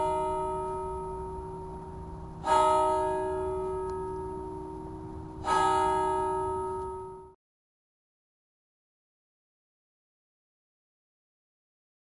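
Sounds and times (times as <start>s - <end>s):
bell tolling: 0.0s - 7.4s.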